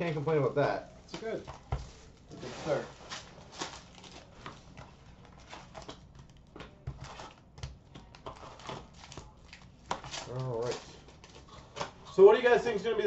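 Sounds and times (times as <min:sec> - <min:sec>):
trading cards rustling: 0:01.2 - 0:11.9.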